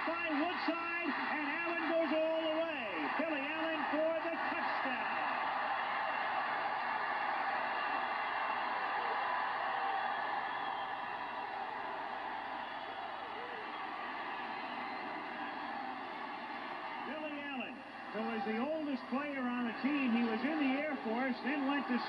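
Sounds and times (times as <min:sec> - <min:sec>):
stadium crowd cheering on tv: 0:00.0 - 0:22.0.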